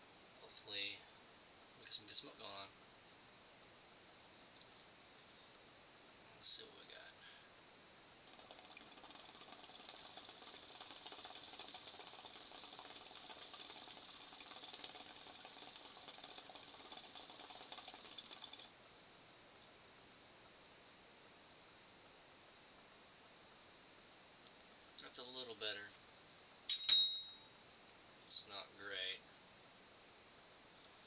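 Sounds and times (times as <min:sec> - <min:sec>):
hookah water bubbling: 0:08.2 - 0:18.8.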